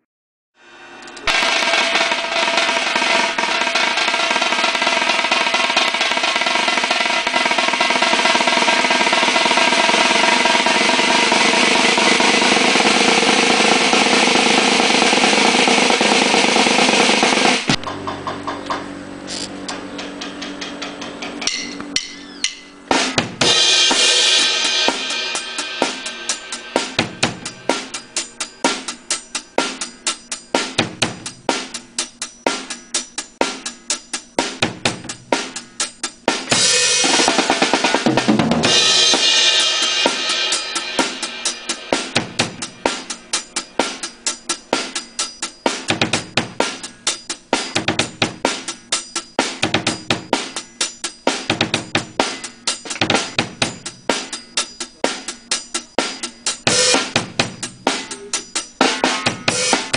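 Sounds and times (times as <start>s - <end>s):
ringing cymbal hits: 0.6s - 18.5s, 19.7s - 59.9s
drum kit solo: 0.6s - 59.9s.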